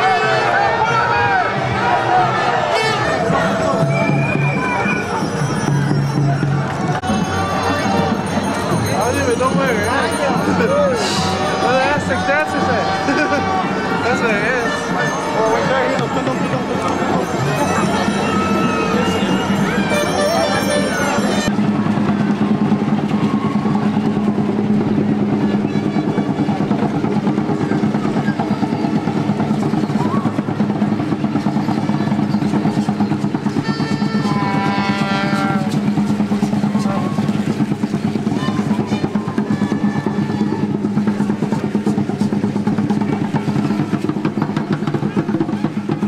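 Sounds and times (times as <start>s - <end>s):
fast steady drumming: 2.9s - 46.0s.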